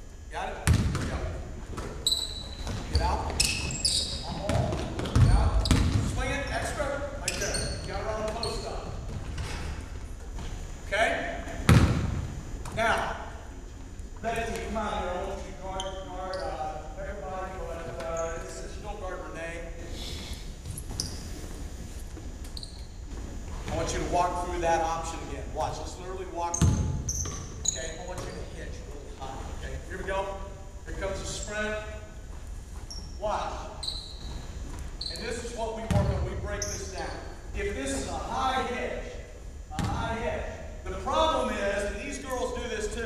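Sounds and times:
basketballs bouncing on wooden floor: 0:00.6 - 0:06.3, 0:11.5 - 0:12.8, 0:26.5 - 0:28.4, 0:35.8 - 0:36.7, 0:39.7 - 0:40.1
sneakers squeaking: 0:00.6 - 0:19.0, 0:20.5 - 0:24.1, 0:26.4 - 0:38.9, 0:39.6 - 0:40.7.

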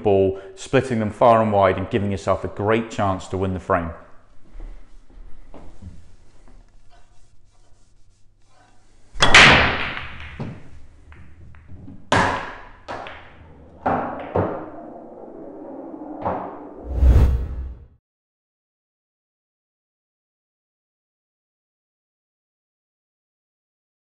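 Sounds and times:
cue ball cracking into balls: 0:09.2 - 0:15.3
pool balls clattering and rolling: 0:09.2 - 0:16.7.

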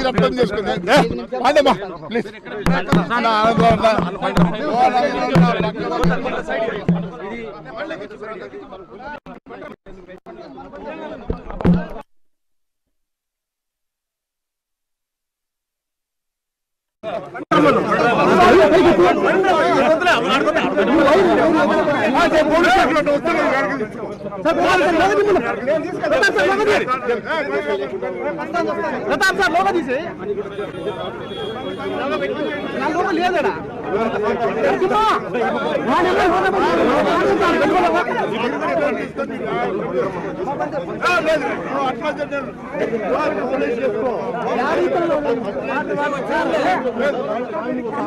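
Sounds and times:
people talking loudly: 0:00.0 - 0:12.1, 0:17.0 - 0:48.0.

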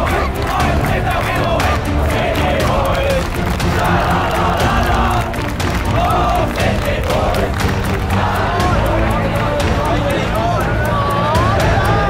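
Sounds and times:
boys chanting and yelling: 0:00.0 - 0:12.0
rhythmic clapping: 0:00.0 - 0:12.0.

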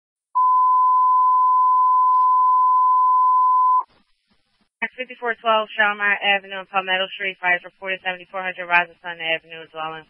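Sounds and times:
radio alert beep: 0:00.4 - 0:03.9.

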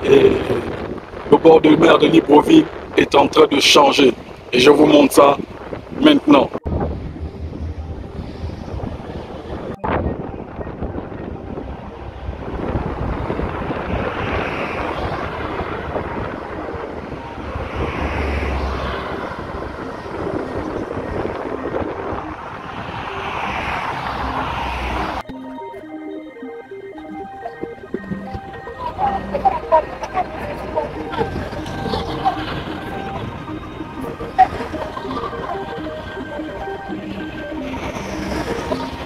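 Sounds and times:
wind rumble on microphone: 0:00.0 - 0:25.2, 0:27.6 - 0:39.0
cars passing: 0:00.0 - 0:39.0.

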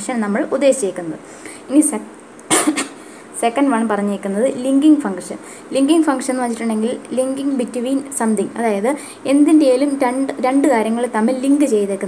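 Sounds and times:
person coughing: 0:02.5 - 0:03.0.

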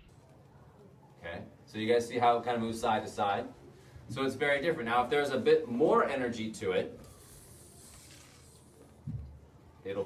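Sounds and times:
metal slinky scraping on tile: 0:07.1 - 0:08.8.

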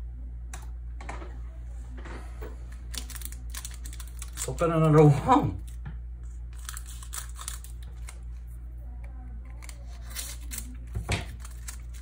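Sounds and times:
foil wrapper crinkling and tearing: 0:02.9 - 0:05.8, 0:06.4 - 0:08.4, 0:09.5 - 0:12.0.

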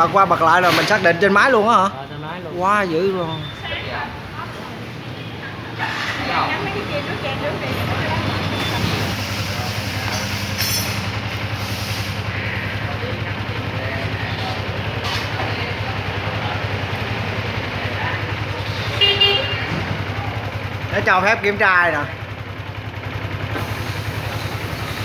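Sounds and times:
motorbike engine idling: 0:00.0 - 0:25.0.

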